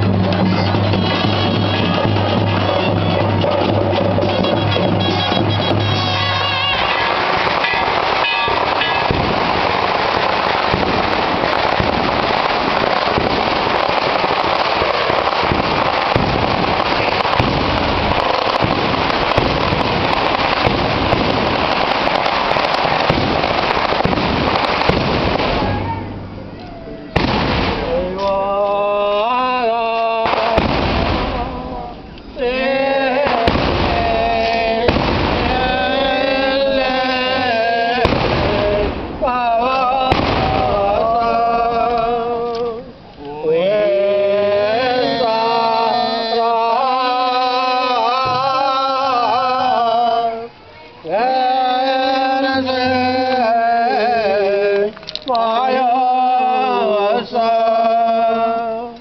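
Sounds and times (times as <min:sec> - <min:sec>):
firecrackers crackling: 0:00.0 - 0:59.0
men chanting a prayer: 0:27.8 - 0:59.0.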